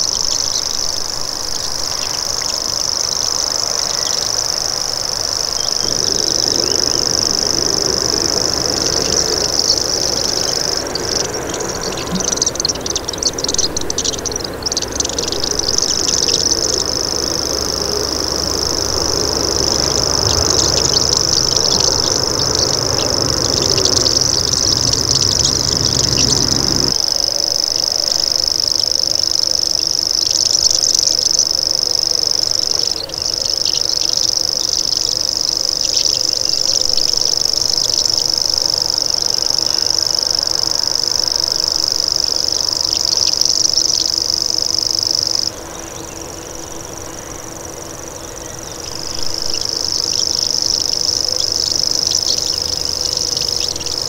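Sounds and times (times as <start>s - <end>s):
bird reeling trill: 0.0s - 54.0s.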